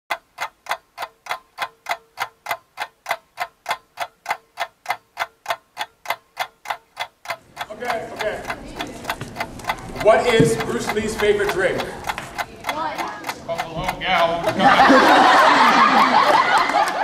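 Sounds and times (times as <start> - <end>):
clock ticking: 0.1 - 17.0.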